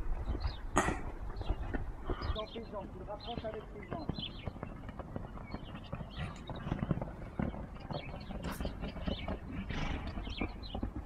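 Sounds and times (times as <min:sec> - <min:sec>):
hoofbeats on sand: 0:00.0 - 0:11.0.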